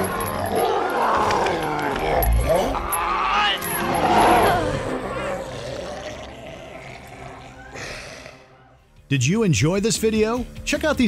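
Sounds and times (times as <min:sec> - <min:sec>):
creature's deep choking groan: 0:03.9 - 0:08.6.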